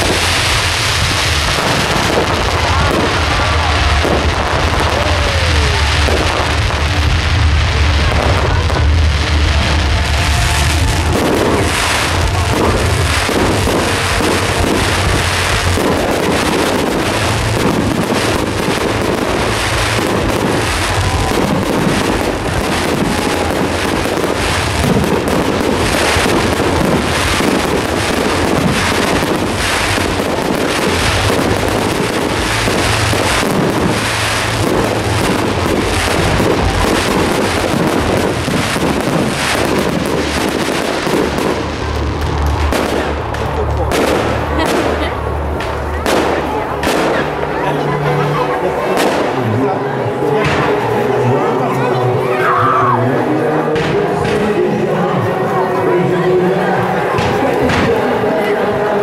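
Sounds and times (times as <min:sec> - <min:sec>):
fireworks bangs and crackling: 0:00.0 - 0:59.0.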